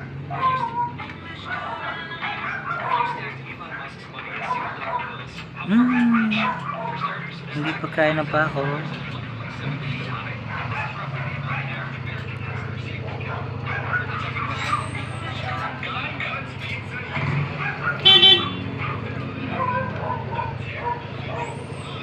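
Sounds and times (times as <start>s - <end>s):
background voices: 3.2s - 18.0s
vehicle horn double toot: 18.0s - 18.6s.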